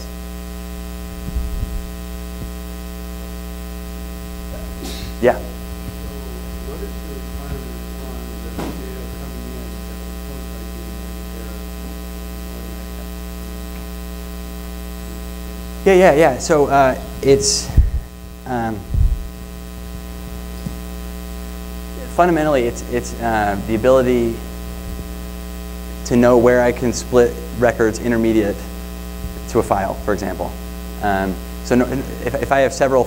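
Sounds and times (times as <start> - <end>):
electrical mains hum: 0.0 - 33.0.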